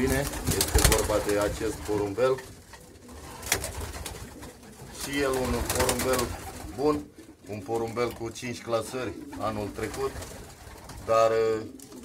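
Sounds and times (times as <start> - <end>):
pigeons cooing faintly: 0.0 - 12.0.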